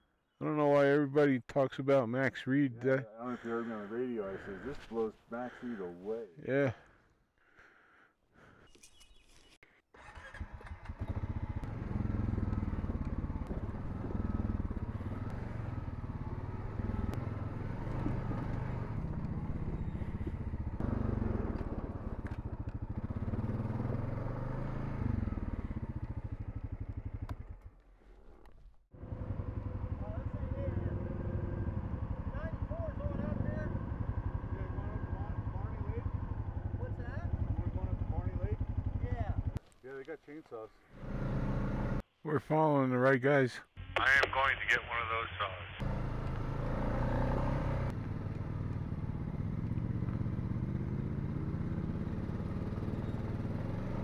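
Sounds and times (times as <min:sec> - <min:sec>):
atv engine running: 0:10.0 - 0:28.2, 0:28.9 - 0:39.6, 0:40.9 - 0:42.0, 0:45.8 - 0:54.0.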